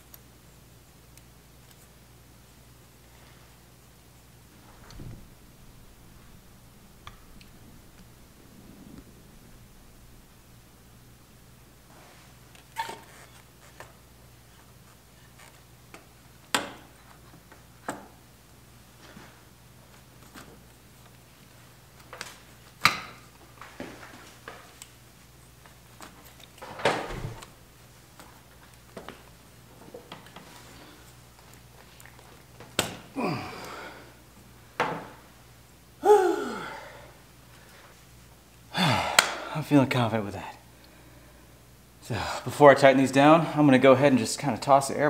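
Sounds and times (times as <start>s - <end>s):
short squeaks: 12.7s - 13.8s.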